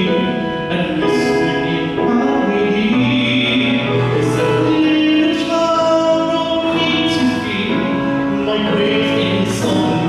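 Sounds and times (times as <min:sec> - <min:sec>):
man singing into microphone: 0:00.0 - 0:10.0
recorded backing music: 0:00.0 - 0:10.0.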